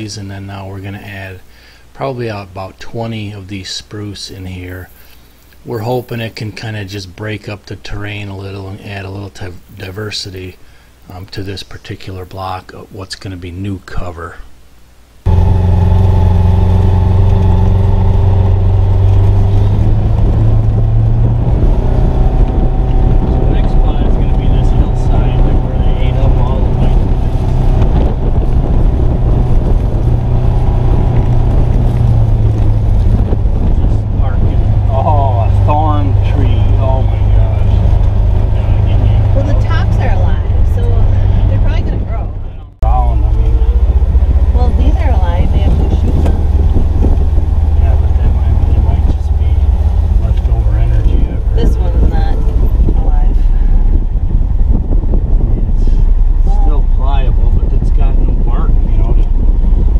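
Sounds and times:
vehicle engine drone: 0:15.2 - 0:59.9.

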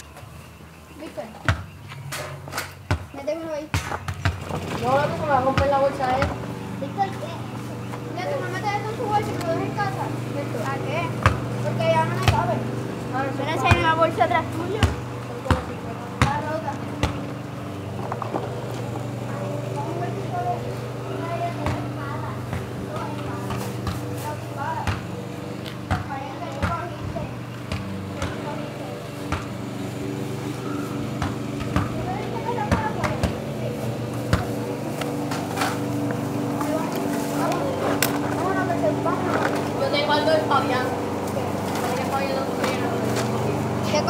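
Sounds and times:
electric motor and gear whine: 0:00.0 - 0:44.0.

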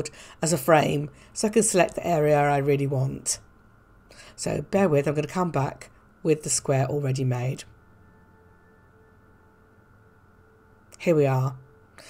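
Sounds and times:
faint steady tones: 0:00.0 - 0:12.0
steady low hum: 0:00.0 - 0:12.0.

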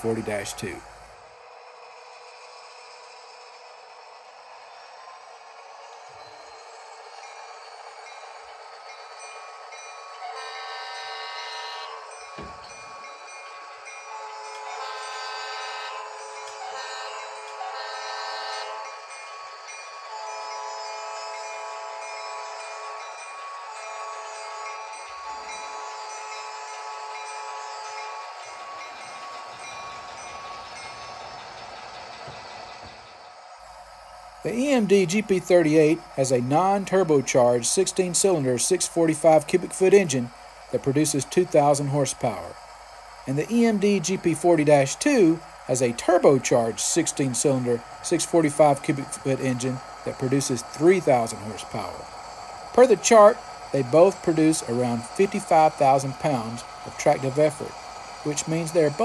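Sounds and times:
diesel locomotive engine: 0:00.0 - 0:59.0
train air horn blasts: 0:10.3 - 0:12.1, 0:14.1 - 0:18.9.

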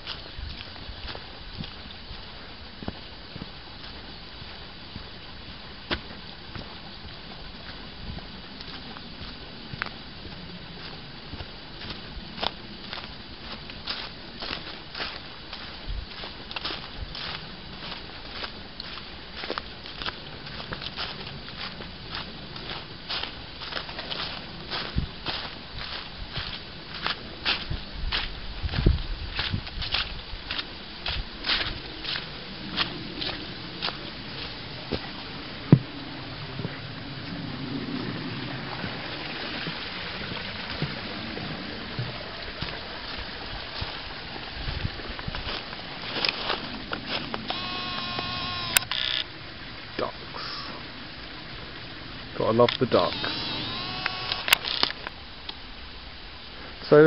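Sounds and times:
footsteps crunching through dry leaves: 0:00.0 - 0:35.3, 0:42.1 - 0:48.7, 0:53.1 - 0:55.0.

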